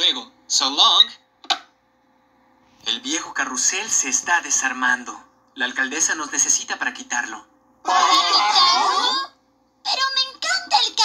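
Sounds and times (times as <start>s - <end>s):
cartoon dialogue: 7.9s - 9.3s, 9.9s - 11.0s.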